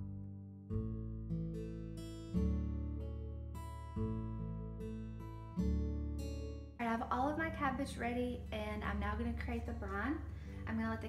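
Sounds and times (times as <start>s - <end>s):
acoustic guitar plucked chords: 0.0s - 11.0s.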